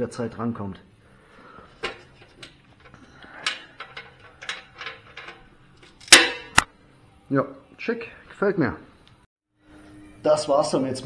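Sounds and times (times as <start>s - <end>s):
handling clicks and knocks: 1.8s - 6.7s
loud ringing clanks: 3.4s - 6.6s.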